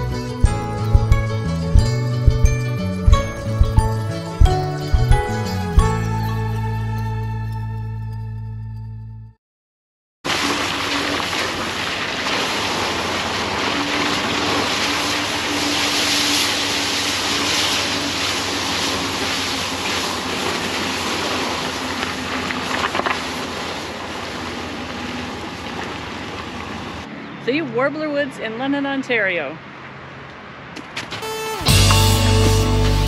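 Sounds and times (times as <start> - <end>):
wind and tyre noise: 0.0 - 6.1, 10.3 - 31.3
sharp knocks: 0.4 - 5.9.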